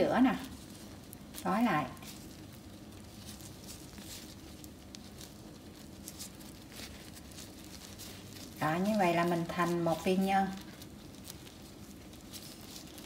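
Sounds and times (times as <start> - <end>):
hands patting sticky paste: 0.4 - 13.0.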